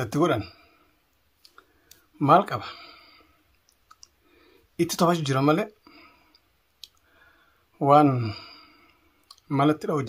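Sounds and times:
man speaking: 0.0s - 0.6s, 2.2s - 2.8s, 4.8s - 5.8s, 7.8s - 8.5s, 9.4s - 10.0s
soft breath: 0.4s - 4.8s, 5.8s - 9.3s
mouth clicks: 3.5s - 4.2s, 6.3s - 7.1s, 9.2s - 9.5s.

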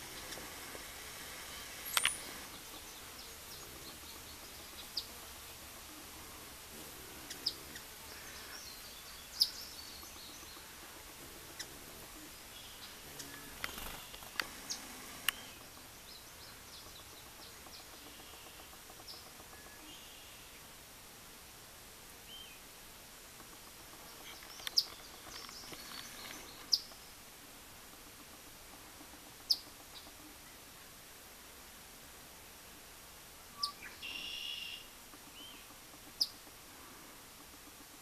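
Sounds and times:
outdoor background hiss: 0.0s - 38.0s
high bird chirps: 33.6s - 35.6s.

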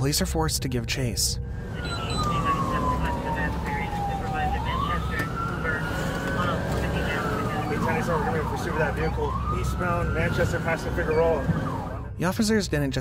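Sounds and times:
car engine and tyres rumbling: 1.5s - 12.1s
police siren wailing and yelping: 1.6s - 12.2s.

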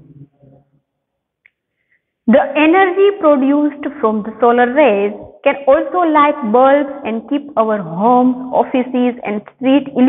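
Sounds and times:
woman speaking: 2.3s - 10.0s.

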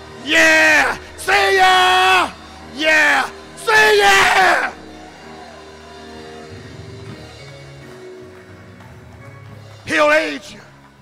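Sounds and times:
organ sustained chords: 0.0s - 11.0s.

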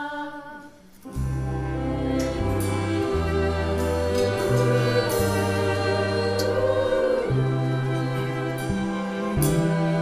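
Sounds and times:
choir singing wordless notes: 0.0s - 10.0s
orchestral accompaniment: 1.1s - 10.0s.

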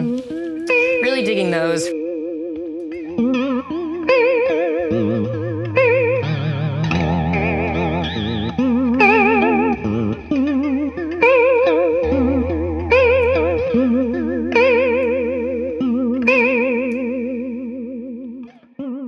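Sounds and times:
electric guitar with vibrato: 0.0s - 19.0s.

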